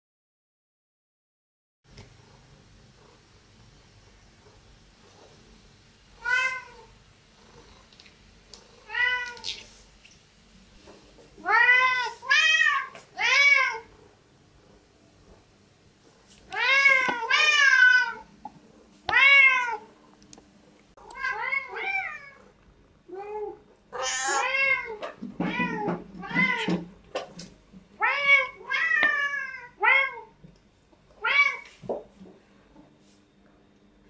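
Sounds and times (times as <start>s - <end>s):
cats meowing: 6.2s - 6.9s, 8.8s - 9.7s, 11.4s - 13.9s, 23.1s - 26.9s.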